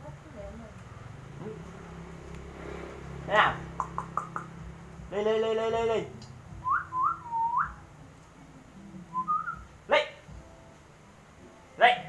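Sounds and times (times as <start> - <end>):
sharp rising chirp: 6.6 - 7.8.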